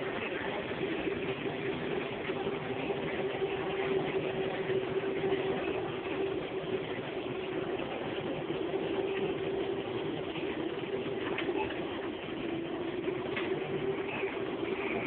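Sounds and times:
mechanical drone with constant tone: 0.0s - 15.0s
rumbling background noise: 0.0s - 15.0s.

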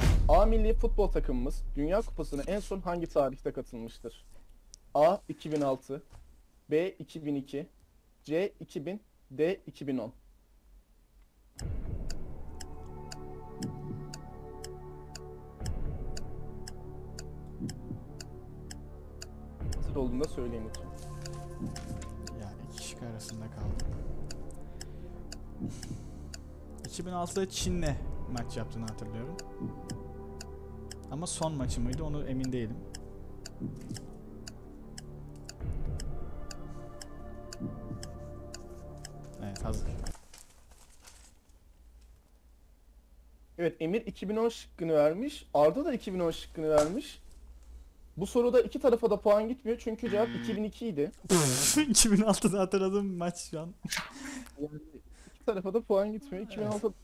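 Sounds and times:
clock-like ticking: 0.0s - 4.2s, 11.5s - 40.3s
low synth bed: 0.0s - 4.7s, 11.6s - 40.2s
sustained chords: 11.6s - 40.1s.

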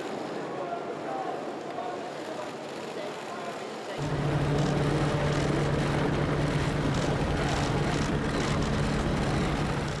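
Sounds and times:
engine drone: 4.0s - 10.0s.

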